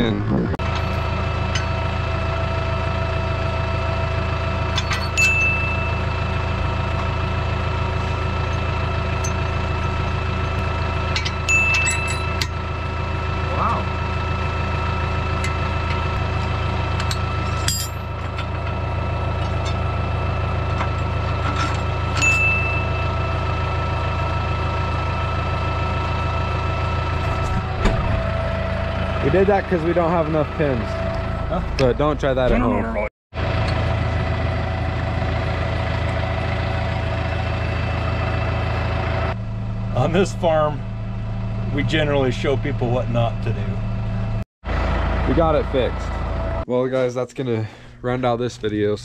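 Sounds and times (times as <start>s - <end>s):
tractor engine idling: 0.6s - 49.0s
sharp metal clinks: 4.8s - 6.1s, 11.2s - 12.4s, 22.2s - 23.1s.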